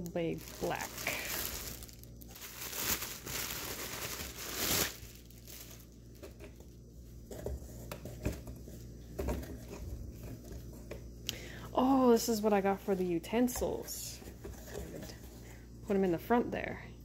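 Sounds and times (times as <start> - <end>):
plastic packaging crinkling: 0.0 - 10.7.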